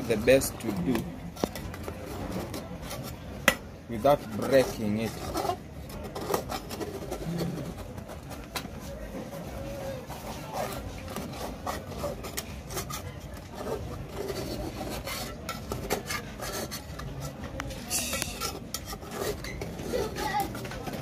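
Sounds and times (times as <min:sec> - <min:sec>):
metal spoon scraping a saucepan: 0:00.0 - 0:08.5, 0:10.0 - 0:21.0.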